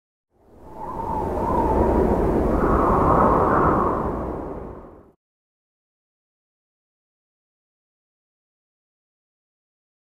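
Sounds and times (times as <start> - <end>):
whoosh with deep rumble: 0.5 - 5.2
wavering whine: 0.6 - 5.1.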